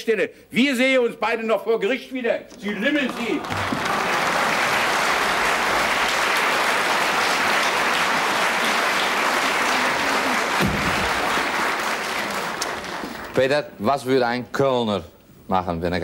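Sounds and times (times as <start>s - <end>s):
studio audience applauding: 3.0s - 13.6s.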